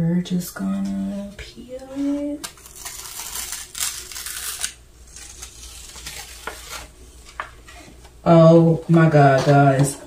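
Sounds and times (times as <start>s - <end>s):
paper rustling and crackling: 2.0s - 8.1s.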